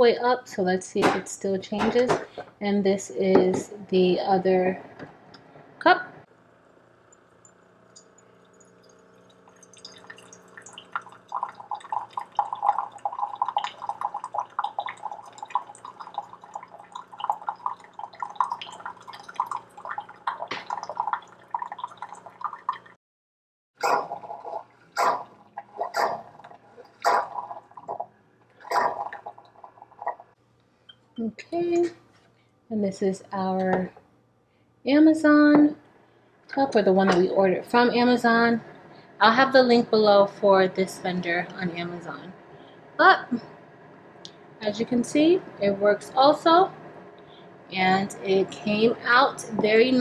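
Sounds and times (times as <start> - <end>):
coffee maker pump hum: 6.3 - 23.0, 36.5 - 50.0
water gurgling and spluttering: 7.4 - 23.0, 24.0 - 30.4.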